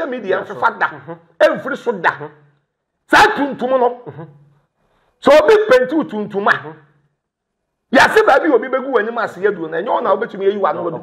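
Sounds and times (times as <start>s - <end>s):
man speaking emphatically: 0.0s - 4.6s, 5.2s - 7.1s, 7.9s - 11.0s.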